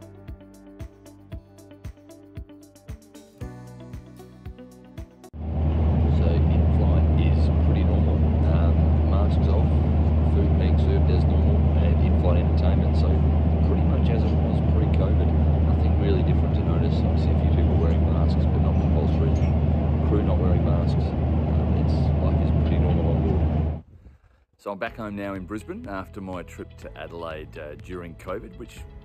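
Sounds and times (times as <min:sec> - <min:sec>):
airliner cabin rumble: 0:05.4 - 0:23.9
passengers talking: 0:05.6 - 0:23.8
man talking close up: 0:06.0 - 0:23.5, 0:24.6 - 0:28.9.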